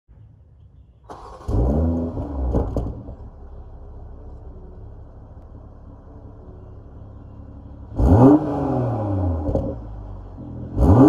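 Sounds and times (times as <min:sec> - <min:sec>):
car starter turning over: 0:01.1 - 0:03.2
car engine revving and idling: 0:01.1 - 0:11.0.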